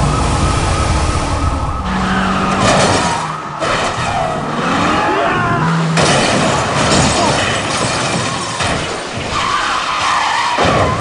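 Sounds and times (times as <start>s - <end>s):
siren wailing: 0.0s - 6.0s
car engines running hard: 0.0s - 11.0s
tyres skidding: 0.0s - 11.0s.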